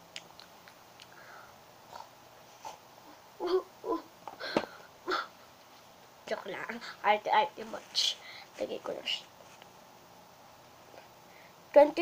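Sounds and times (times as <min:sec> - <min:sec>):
girl breathy vocal sounds: 0:03.4 - 0:05.4
girl speaking: 0:06.3 - 0:09.3, 0:11.7 - 0:12.0.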